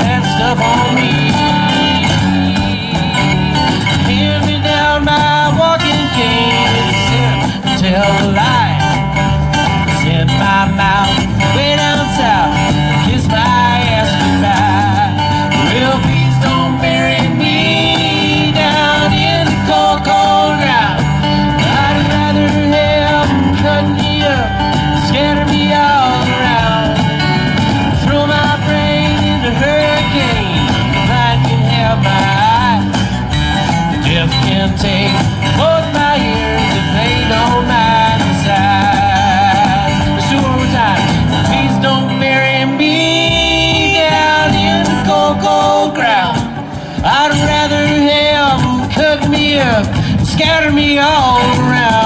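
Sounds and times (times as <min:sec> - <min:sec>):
acoustic guitars strumming: 0:00.0 - 0:52.0
cajon: 0:00.0 - 0:52.0
upright bass: 0:00.0 - 0:52.0.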